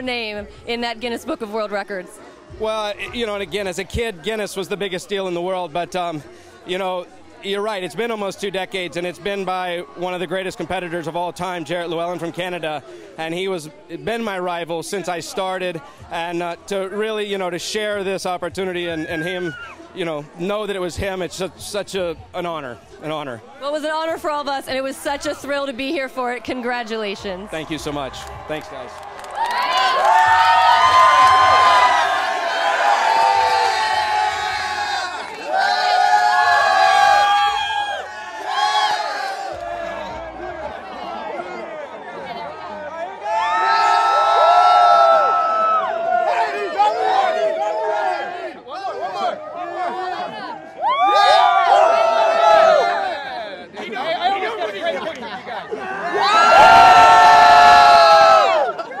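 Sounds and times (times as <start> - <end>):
crowd cheering and shouting: 18.8 - 20.0, 24.8 - 59.0.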